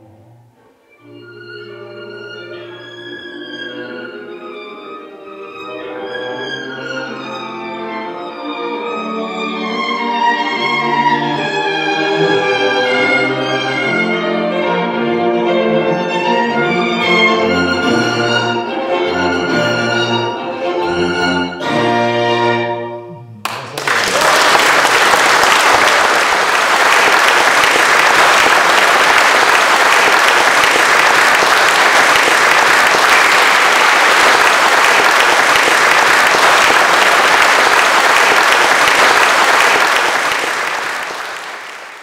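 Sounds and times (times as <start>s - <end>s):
bowed string chamber music: 0.0s - 23.6s
audience applause: 23.4s - 42.0s.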